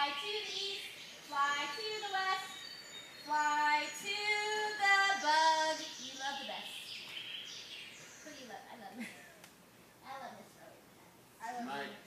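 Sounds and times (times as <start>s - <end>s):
children and woman singing: 0.0s - 2.6s, 3.3s - 6.1s.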